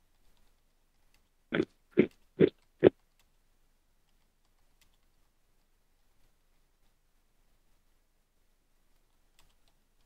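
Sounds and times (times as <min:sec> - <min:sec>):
person grunting: 0:01.5 - 0:02.5.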